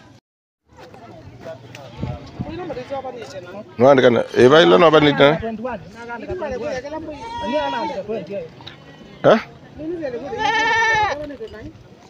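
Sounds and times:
goat bleating: 0:06.9 - 0:09.5, 0:10.2 - 0:11.2.

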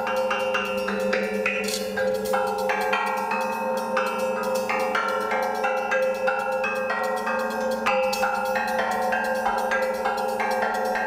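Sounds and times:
film soundtrack music: 0:00.0 - 0:11.0.

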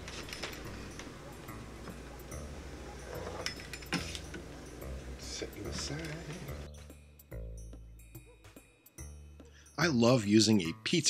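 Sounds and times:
pizza cutter rolling through dough: 0:00.0 - 0:04.4.

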